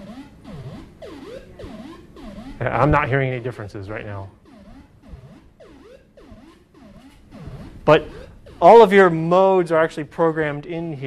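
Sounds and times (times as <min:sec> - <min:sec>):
synthesizer note pattern with pitch dips: 0:00.0 - 0:11.0.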